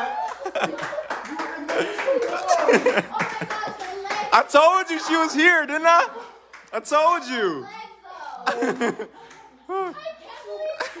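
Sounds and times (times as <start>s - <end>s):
people laughing: 0.0s - 4.2s, 8.4s - 11.0s
excited exclaiming: 0.0s - 8.8s.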